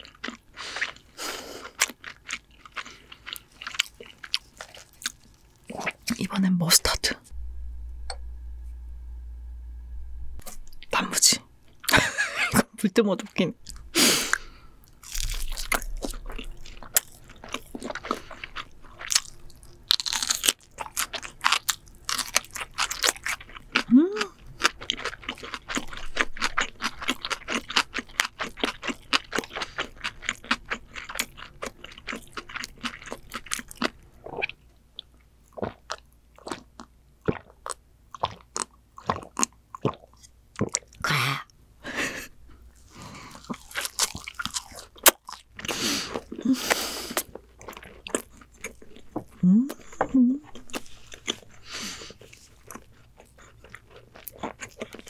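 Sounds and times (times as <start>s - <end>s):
crunchy chewing: 0.0s - 6.2s, 13.6s - 34.6s, 42.7s - 55.0s
short hum: 7.3s - 11.0s.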